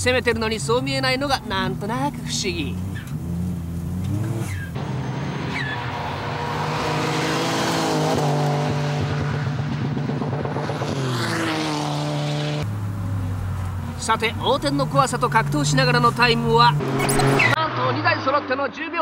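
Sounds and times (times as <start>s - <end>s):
minivan engine revving hard: 0.6s - 18.3s.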